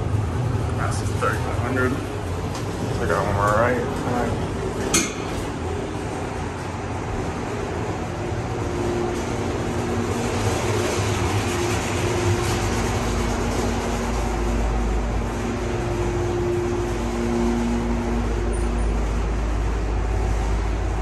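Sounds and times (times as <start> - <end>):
elevator whir and rumble: 0.0 - 21.0
faint hum: 0.0 - 21.0.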